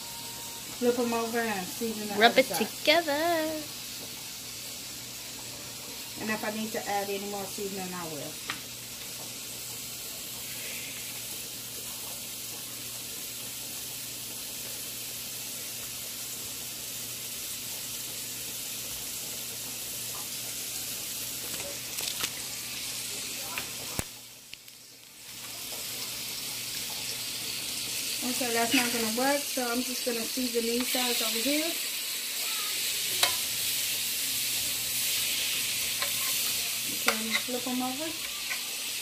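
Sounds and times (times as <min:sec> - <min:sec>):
butter sizzling in a frying pan: 0:00.0 - 0:39.0.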